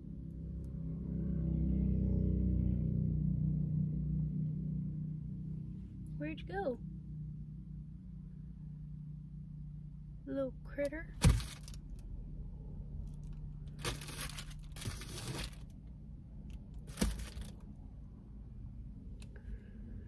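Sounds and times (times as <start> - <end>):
steady low hum: 2.8 - 20.0
rustling movement: 11.2 - 12.0, 13.7 - 15.8.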